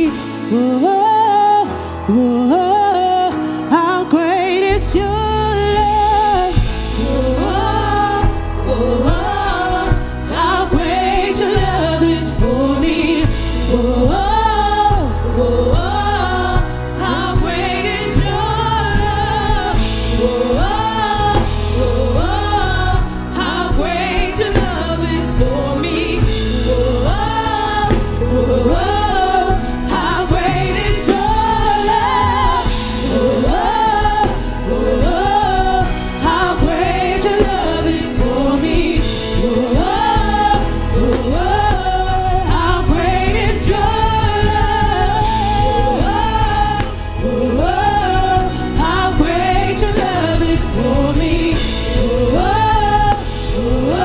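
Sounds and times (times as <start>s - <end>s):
group of singers singing: 0.0s - 54.0s
keyboard bass and drums: 4.9s - 54.0s.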